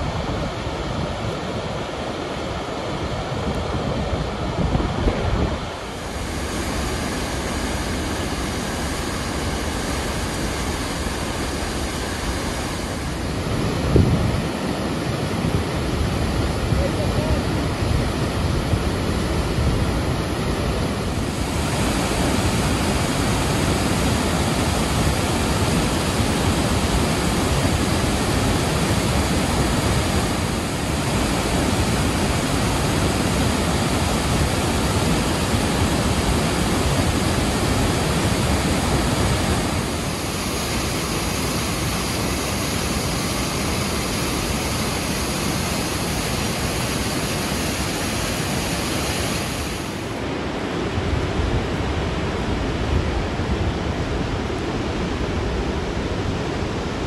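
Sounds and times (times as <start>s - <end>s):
large waterfall roaring: 0.0s - 57.0s.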